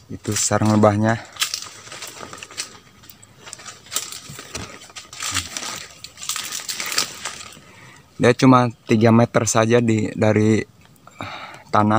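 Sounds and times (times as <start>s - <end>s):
dry leaves and twigs crackling: 0.0s - 9.1s.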